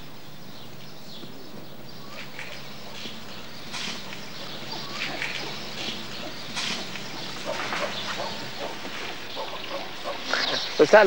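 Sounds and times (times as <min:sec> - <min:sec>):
rustling in straw: 0:02.1 - 0:11.0.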